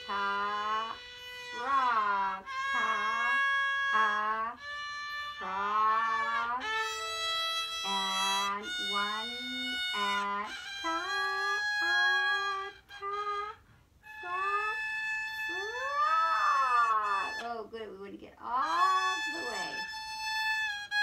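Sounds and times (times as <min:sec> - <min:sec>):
violin playing slow notes: 0:00.0 - 0:17.5, 0:18.6 - 0:21.0.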